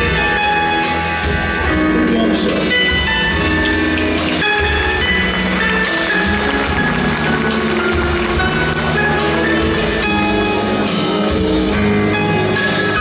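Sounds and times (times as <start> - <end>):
keyboard: 0.0 - 13.0
live band instrumental: 0.0 - 13.0
percussion beat: 3.4 - 11.6.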